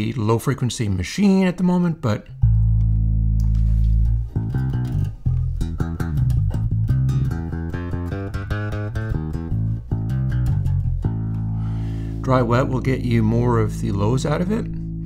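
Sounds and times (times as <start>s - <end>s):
filtered electric bass guitar: 1.2s - 15.0s.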